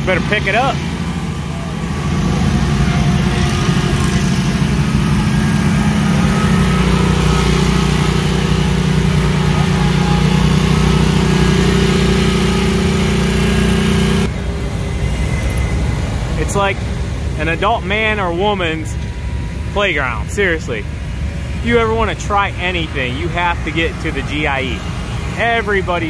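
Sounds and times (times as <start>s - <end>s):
mower engine running: 0.0s - 26.0s.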